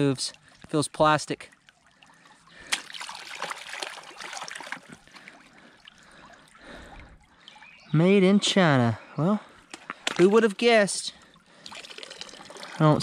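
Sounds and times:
creek water trickling: 0.0s - 13.0s.

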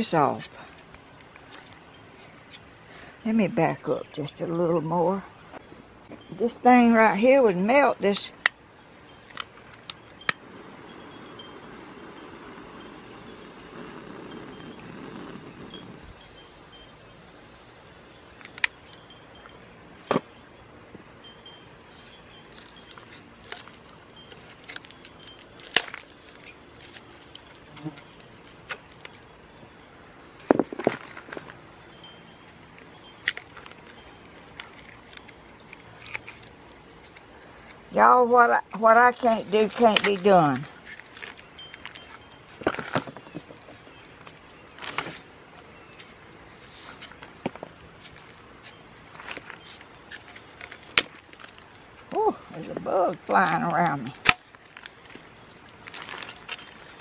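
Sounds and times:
insect buzzing close by: 10.4s - 18.4s
sharp clicks and cracks of dried mortar: 22.5s - 29.2s, 33.1s - 37.8s, 46.9s - 57.0s.

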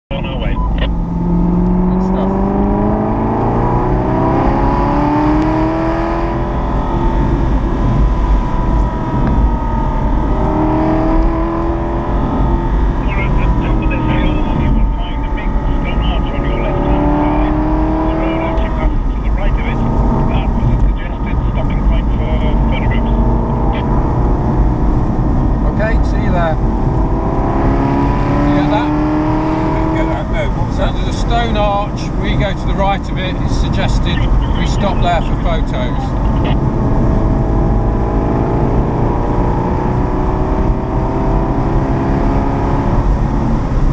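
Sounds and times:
car engine revving: 0.1s - 43.9s.

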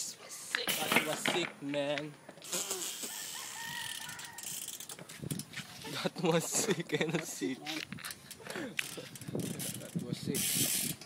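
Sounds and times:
rooster crowing: 3.0s - 4.7s.

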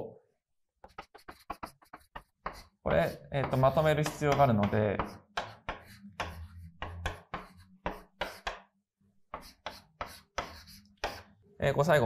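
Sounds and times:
chalk tapping and scraping on blackboard: 0.8s - 11.4s.

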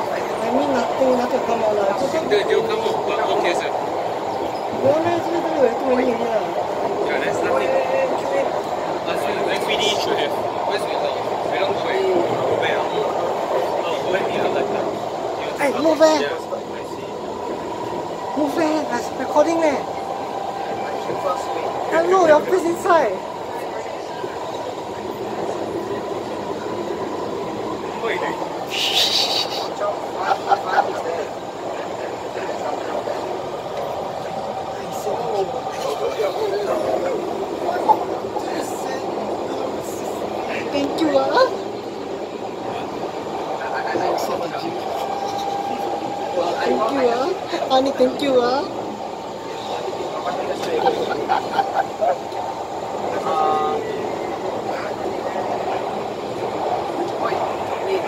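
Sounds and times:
train wheels rumbling: 0.0s - 58.0s
voices: 0.0s - 58.0s.

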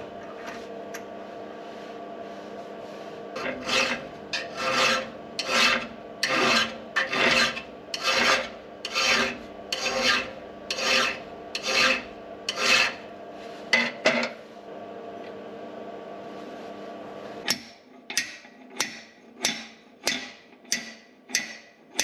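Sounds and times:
hand file filing steel: 3.4s - 13.0s.

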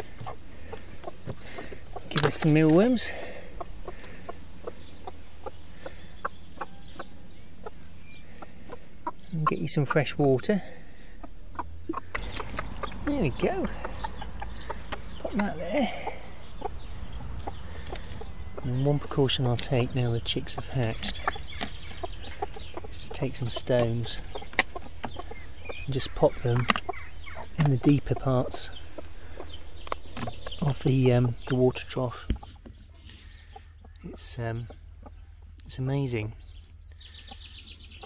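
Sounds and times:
hen clucking: 0.0s - 38.0s.

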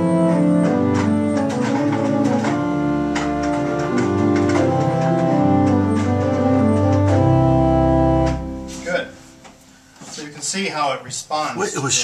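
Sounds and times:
pipe organ chords: 0.0s - 9.9s.

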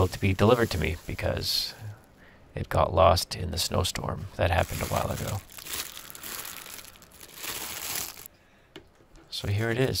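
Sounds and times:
plastic bag crinkling: 0.0s - 1.5s, 4.4s - 8.3s.

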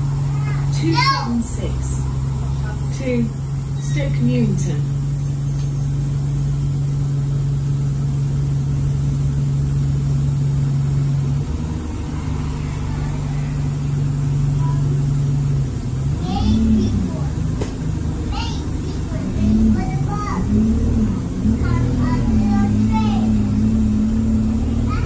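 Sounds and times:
bus engine hum from inside: 0.0s - 25.0s.

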